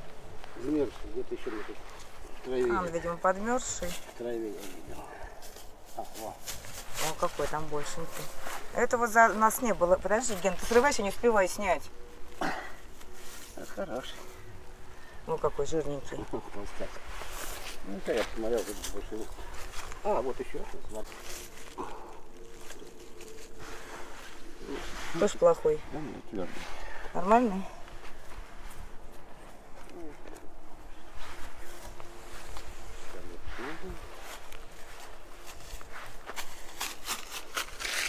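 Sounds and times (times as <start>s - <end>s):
footsteps in dry leaves: 0.0s - 15.2s, 16.6s - 38.0s
faint steady hum: 0.0s - 38.0s.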